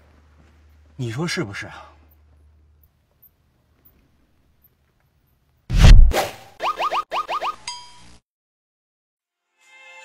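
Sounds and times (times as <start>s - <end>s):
cartoon swishing hit: 5.7s - 7.4s
upward-sliding pitched blips: 5.8s - 7.7s.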